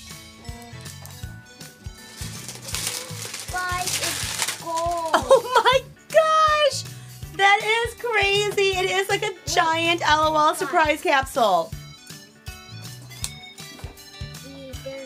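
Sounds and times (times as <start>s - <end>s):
background music: 0.0s - 15.0s
plastic wrapper crinkling: 2.0s - 5.6s.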